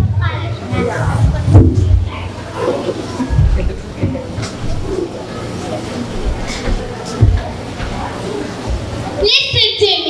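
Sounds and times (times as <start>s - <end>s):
low voices murmuring: 0.0s - 10.0s.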